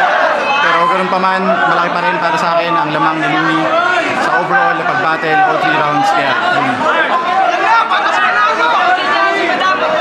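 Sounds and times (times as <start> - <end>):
background voices chattering: 0.0 - 10.0
man talking close: 0.6 - 6.8.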